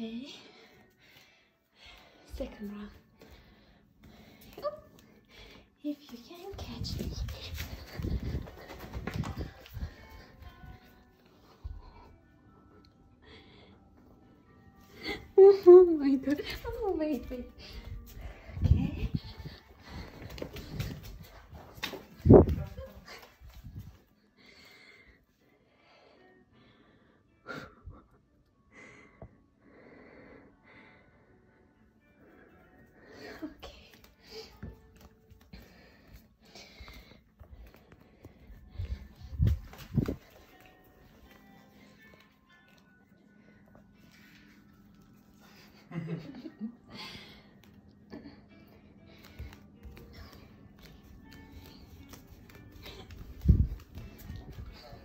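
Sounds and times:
person panting: 3.0s - 5.8s, 6.9s - 12.2s, 17.4s - 28.0s, 32.4s - 42.4s, 43.1s - 55.0s.

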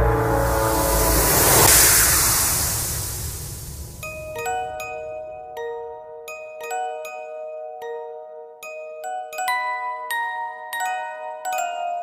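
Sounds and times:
rushing whoosh: 0.0s - 5.4s.

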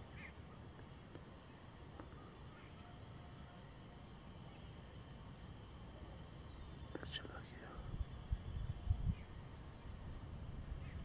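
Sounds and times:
faint whisper: 6.9s - 8.0s
wind rumble on microphone: 7.7s - 11.0s.

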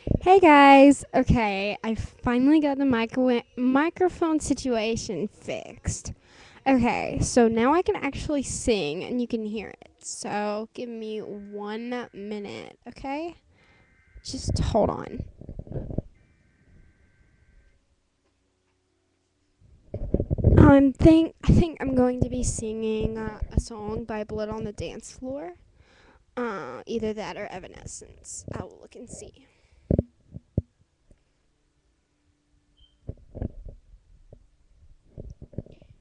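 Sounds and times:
microphone handling thumps and rubs: 0.0s - 0.3s, 14.3s - 16.2s, 19.9s - 20.8s, 29.9s - 30.7s, 33.0s - 36.0s.

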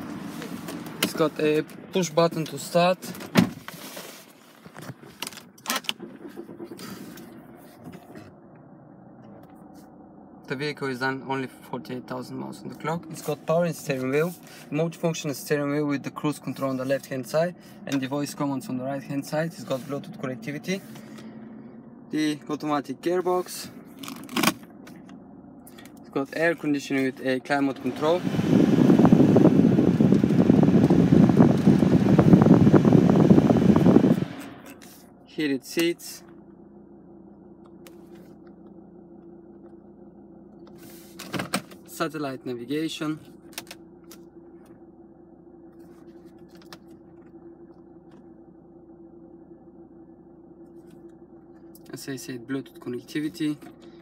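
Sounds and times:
diesel engine idling: 5.9s - 54.0s
blower fan rushing air: 6.0s - 35.2s.

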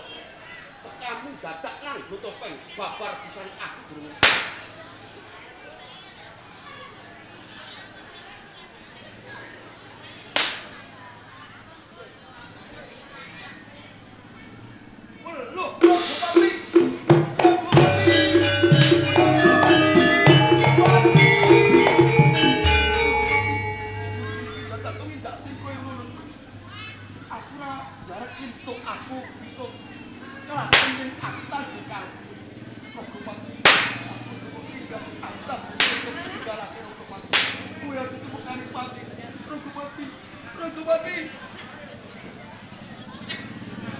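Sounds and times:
ringing percussion strikes: 4.2s - 4.8s, 15.8s - 25.7s, 30.6s - 32.3s, 33.7s - 36.4s, 37.3s - 38.2s
sharp crack: 4.2s - 4.8s, 10.4s - 10.8s, 30.7s - 31.4s, 33.7s - 34.3s, 35.8s - 36.4s, 37.3s - 37.8s.

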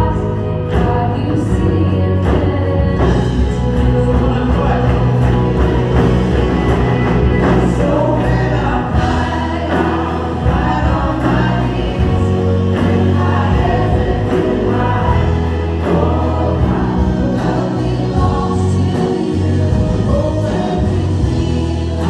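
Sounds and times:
women singing backing vocals: 0.0s - 5.5s, 6.4s - 22.0s
acoustic and electric guitars: 0.0s - 22.0s
bass guitar: 0.0s - 22.0s
congregation singing along: 0.0s - 22.0s
man singing lead: 0.0s - 22.0s.

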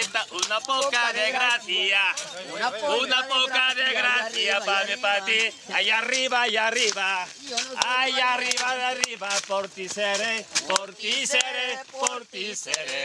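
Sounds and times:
man singing unaccompanied: 0.0s - 13.0s.

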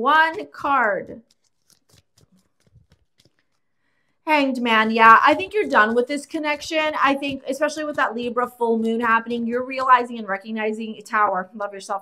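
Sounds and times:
cards being shuffled: 0.3s - 3.7s.

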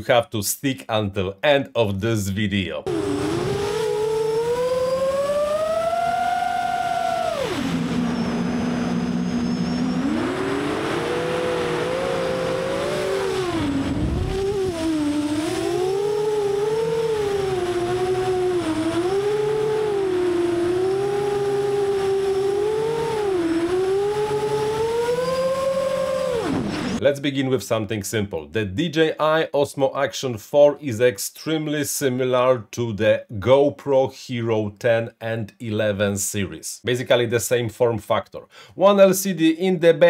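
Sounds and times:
drone motors whining: 2.9s - 27.0s.

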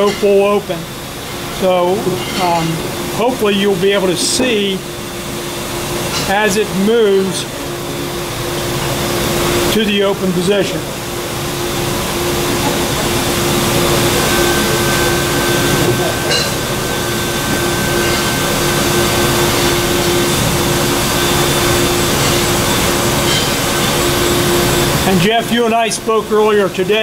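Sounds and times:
electric motor and gearbox humming: 0.0s - 27.0s.

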